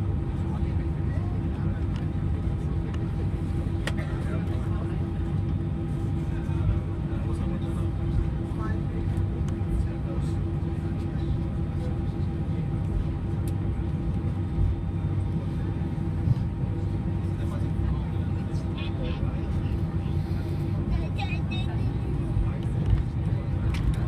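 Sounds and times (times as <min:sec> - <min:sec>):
constant hums: 0:00.0 - 0:24.0
faint passenger voices: 0:00.0 - 0:24.0
idling jet engines rumble: 0:00.0 - 0:24.0.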